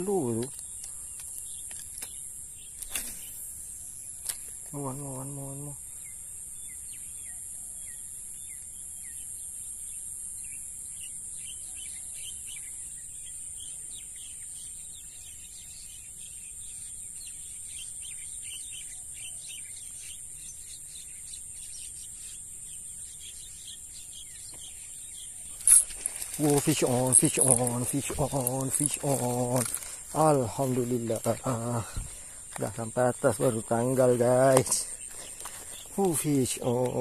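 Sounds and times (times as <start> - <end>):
birds chirping: 0.0 - 37.0
high-pitched insect drone: 24.9 - 37.0.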